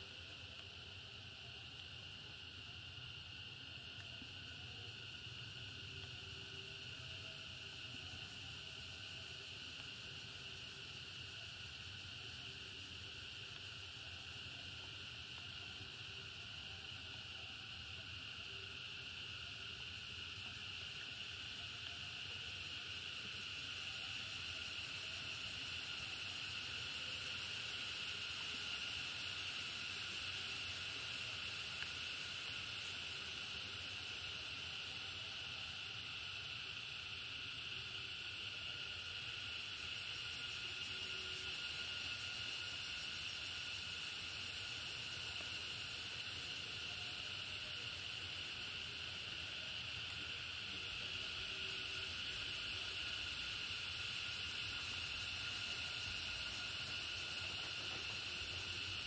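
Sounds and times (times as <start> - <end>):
insects shrill drone: 0.0 - 59.0.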